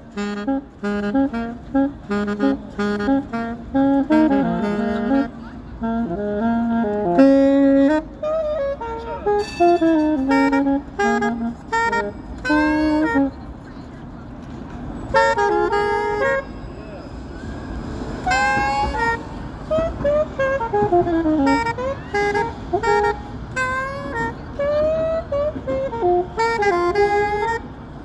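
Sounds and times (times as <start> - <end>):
solo saxophone: 0.0 - 13.6, 15.1 - 16.5, 18.1 - 27.8
street traffic noise: 0.0 - 28.0.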